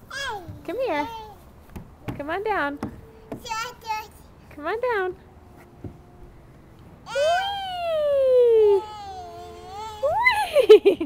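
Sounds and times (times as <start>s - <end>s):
high-pitched whee: 7.1s - 10.5s.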